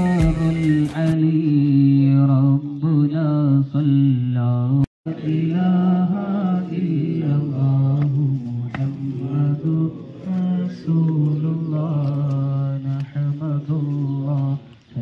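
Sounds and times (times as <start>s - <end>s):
man chanting devotional song: 0.0s - 15.0s.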